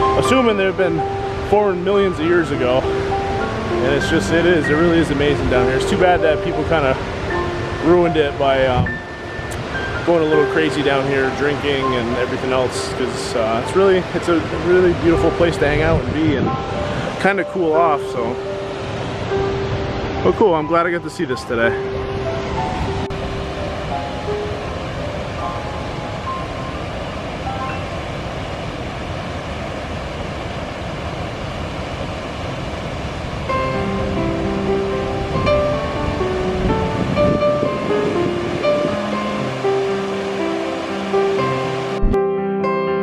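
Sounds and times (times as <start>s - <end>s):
background music: 0.0s - 28.2s, 33.5s - 43.0s
waterfall rushing: 0.0s - 42.1s.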